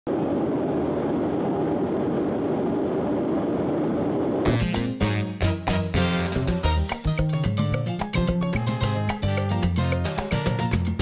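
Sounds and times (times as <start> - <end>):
jet airliner cabin noise: 0.1 - 4.5.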